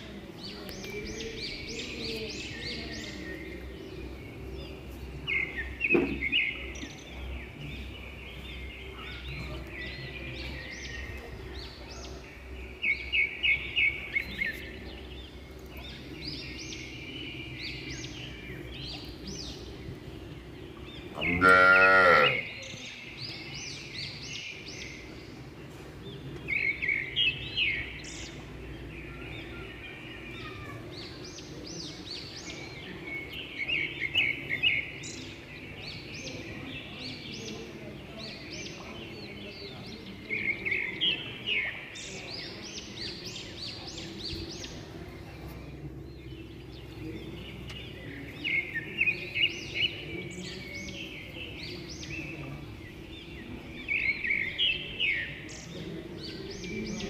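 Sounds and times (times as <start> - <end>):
small birds chirping: 0.0 - 57.0.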